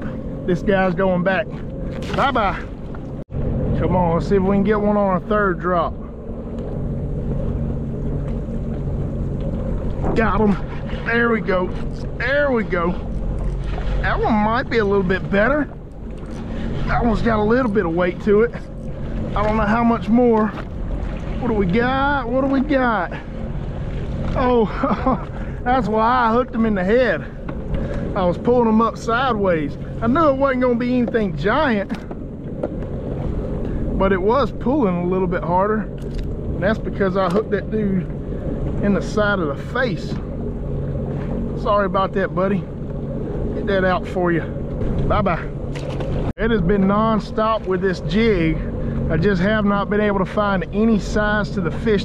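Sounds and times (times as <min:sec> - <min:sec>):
jet ski idling: 0:00.0 - 0:52.0
wind buffeting microphone: 0:00.0 - 0:52.0.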